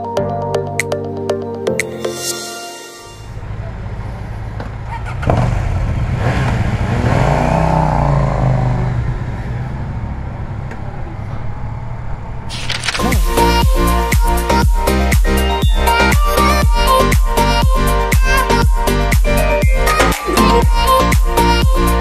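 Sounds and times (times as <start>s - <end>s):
electronic dance music: 1.7s - 3.3s, 13.0s - 22.0s
motorcycle engine idling and revving: 3.3s - 15.4s.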